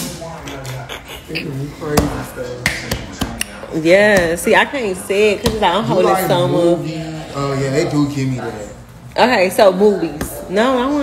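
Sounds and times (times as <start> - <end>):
low indistinct talking: 0.0 - 5.8.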